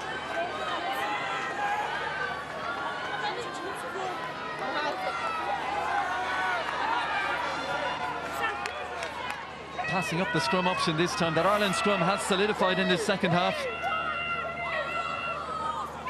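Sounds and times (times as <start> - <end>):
crowd chattering and calling out: 0.0 - 16.0.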